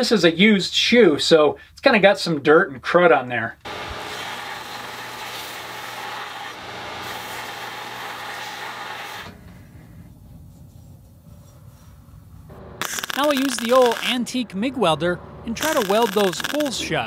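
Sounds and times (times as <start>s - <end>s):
motor hum: 12.5s - 14.2s, 15.2s - 16.8s
belt grinder grinding steel: 12.8s - 14.2s, 15.6s - 16.8s.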